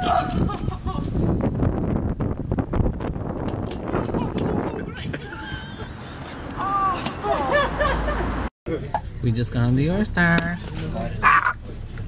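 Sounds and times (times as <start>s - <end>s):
wind buffeting microphone: 0.0s - 7.3s.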